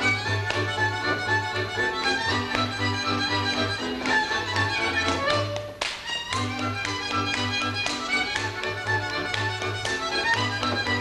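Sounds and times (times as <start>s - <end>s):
dancer's tapping steps: 0.0s - 11.0s
fiddle band dance music: 0.0s - 11.0s
hand claps: 0.0s - 11.0s.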